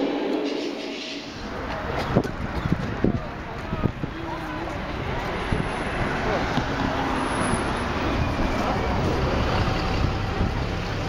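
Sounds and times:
indistinct voices: 0.0s - 11.0s
road traffic: 0.0s - 11.0s.

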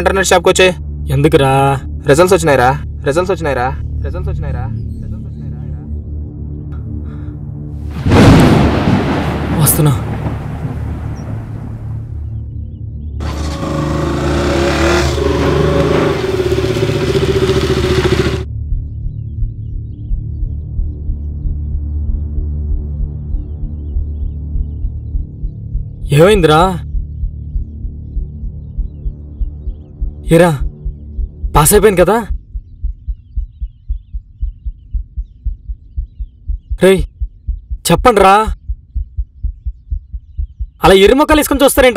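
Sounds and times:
motorcycle engine revving: 13.2s - 18.5s
low rapid heartbeat-like thudding: 18.4s - 41.6s.

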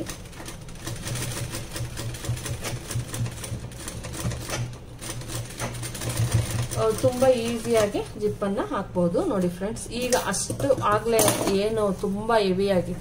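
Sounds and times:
sewing machine stitching: 0.0s - 8.0s.

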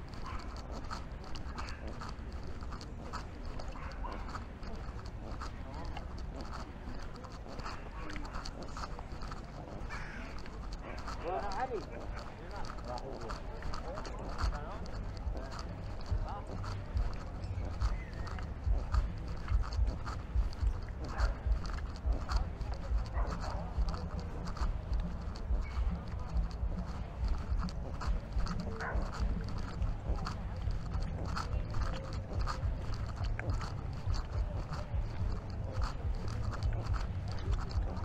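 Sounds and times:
footsteps on a path: 0.0s - 38.0s
people's voices: 0.0s - 38.0s
steady low rumble: 0.0s - 38.0s.

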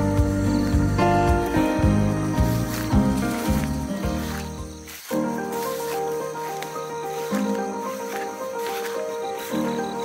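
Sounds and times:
instrumental background music: 0.0s - 10.0s.

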